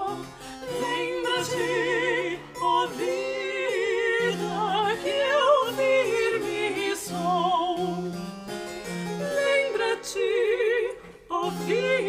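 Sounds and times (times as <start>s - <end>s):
two women singing a duet: 0.0s - 8.3s, 9.1s - 12.0s.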